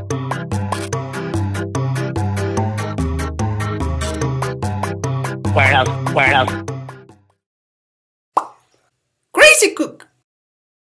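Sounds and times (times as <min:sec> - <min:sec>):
music: 0:00.0 - 0:07.4.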